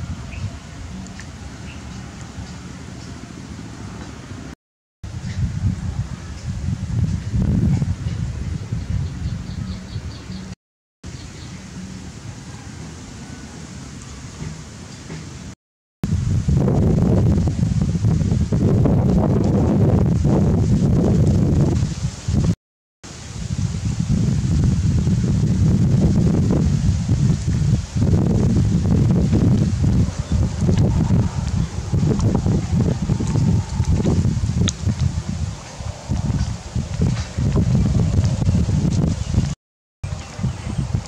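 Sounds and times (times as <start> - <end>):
wind buffeting microphone: 0.0 - 10.6, 16.0 - 41.0
leaves rustling: 23.1 - 39.5.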